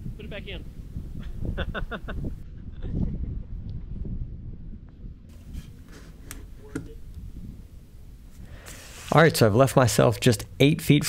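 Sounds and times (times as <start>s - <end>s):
wind rumbling on microphone: 0.0s - 9.6s.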